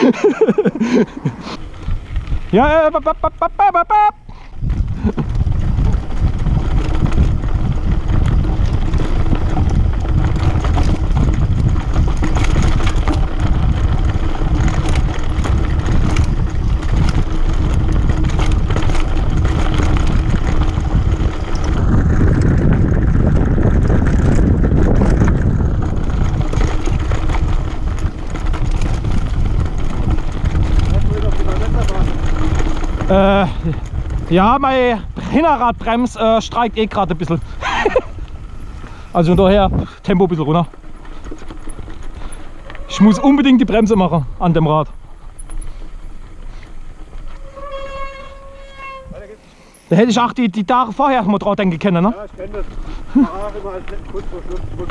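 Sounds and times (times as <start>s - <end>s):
wind rushing over microphone: 0.0s - 3.5s, 4.2s - 54.9s
bike rattling over bumps: 0.0s - 54.9s.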